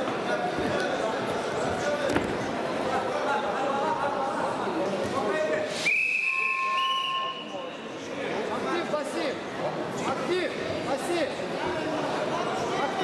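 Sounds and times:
crowd chatter in sports hall: 0.0 - 13.0
referee's whistle blast: 5.8 - 7.6.

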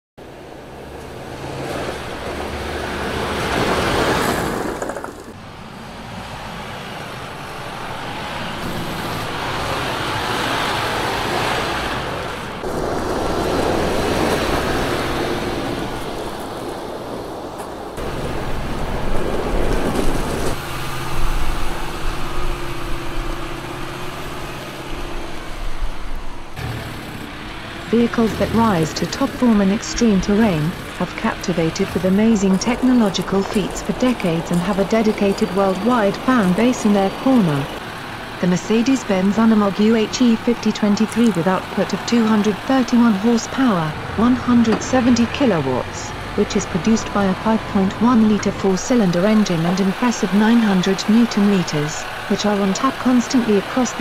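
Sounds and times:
truck engine running under load: 0.2 - 54.0
tyres on gravel and rock: 1.4 - 5.4, 26.6 - 38.3.

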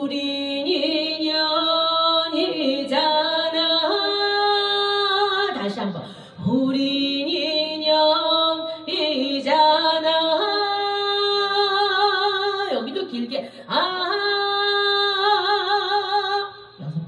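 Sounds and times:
woman singing into a microphone: 0.0 - 16.8.

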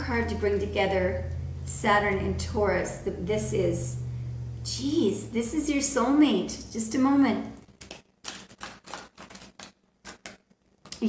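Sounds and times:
cards being shuffled by hand: 7.6 - 11.0.

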